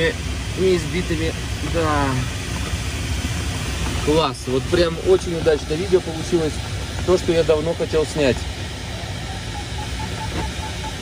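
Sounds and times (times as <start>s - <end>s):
cockpit airflow rush: 0.0s - 11.0s.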